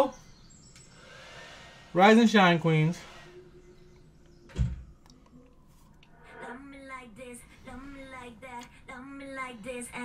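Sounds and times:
door shutting with heavy thud: 4.5s - 4.9s.

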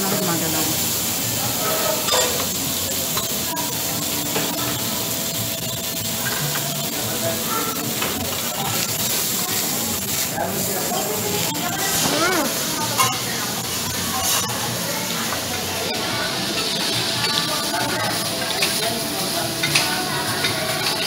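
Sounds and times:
meat sizzling on a griddle: 0.0s - 21.0s.

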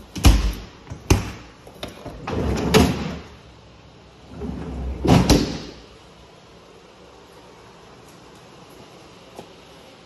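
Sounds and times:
refrigerator door opening and shutting: 0.1s - 3.3s, 4.4s - 5.8s.

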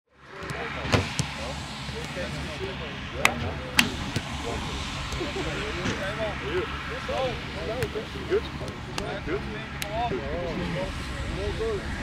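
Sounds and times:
distant voices: 0.1s - 12.0s.

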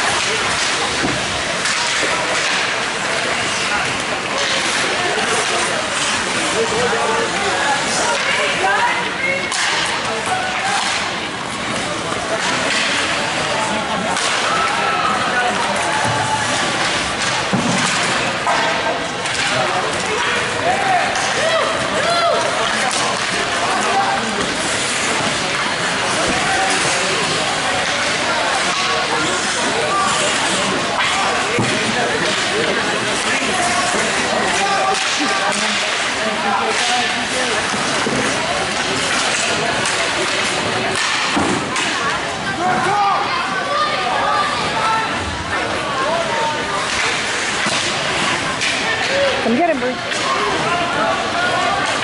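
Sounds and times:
skates scraping ice: 0.0s - 43.0s
hockey sticks and puck clacking: 0.0s - 43.3s, 44.2s - 52.0s.

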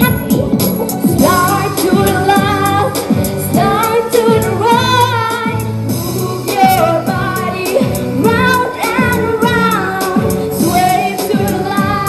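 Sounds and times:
backing track with steady beat: 0.0s - 12.0s
girl singing pop song: 0.0s - 12.0s.

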